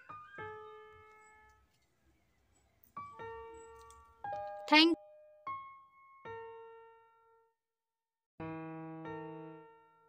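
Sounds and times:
piano notes: 0:02.9 - 0:07.4.

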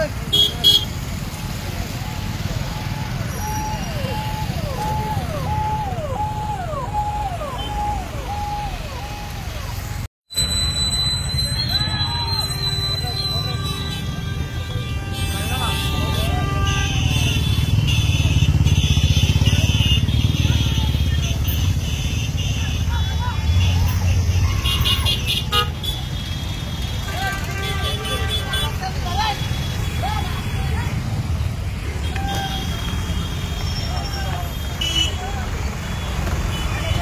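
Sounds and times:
engines rumbling: 0:00.0 - 0:37.0
horns honking: 0:00.0 - 0:37.0
crowd shouting and cheering: 0:01.4 - 0:14.2, 0:30.0 - 0:37.0.

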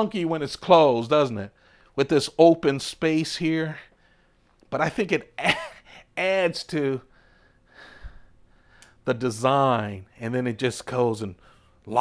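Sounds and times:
person breathing in: 0:07.1 - 0:09.0.

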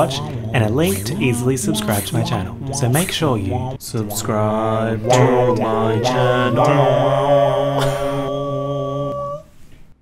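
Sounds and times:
person humming a steady note: 0:00.0 - 0:09.6.

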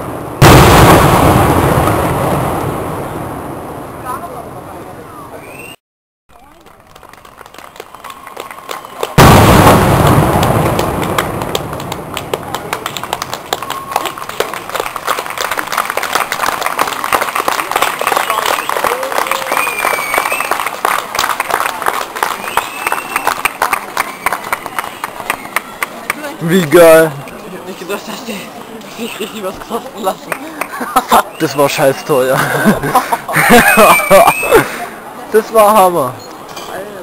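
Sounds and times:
loud firework bang: 0:00.0 - 0:04.1, 0:09.2 - 0:12.2
firework rocket rising: 0:00.0 - 0:04.3, 0:09.2 - 0:12.5
firework crackling: 0:00.0 - 0:05.0, 0:09.0 - 0:26.6.

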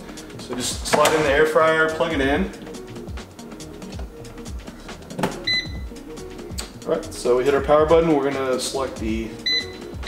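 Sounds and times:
background music with steady beat: 0:00.0 - 0:10.0
air fryer electronic beep: 0:05.4 - 0:06.0, 0:09.4 - 0:10.0.

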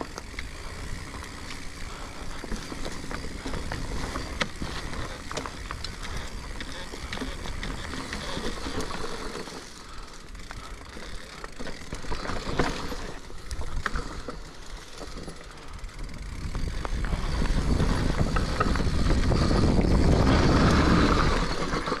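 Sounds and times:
bike rattles and clicks: 0:00.0 - 0:22.0
tyre and wind rumble: 0:15.8 - 0:22.0.

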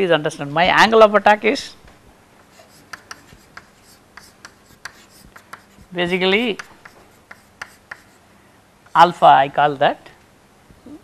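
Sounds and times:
chalk scratching on blackboard: 0:02.5 - 0:08.2.

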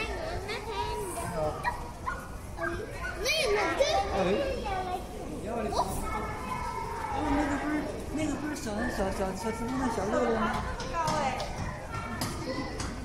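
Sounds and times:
adult chatter: 0:00.0 - 0:13.0
children talking and calling out: 0:00.0 - 0:13.0.

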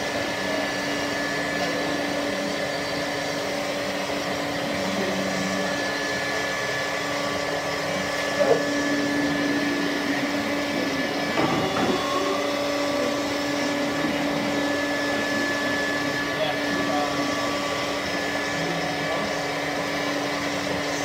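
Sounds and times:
dust collection vacuum: 0:00.0 - 0:21.0
router spindle motor humming: 0:00.0 - 0:21.0.

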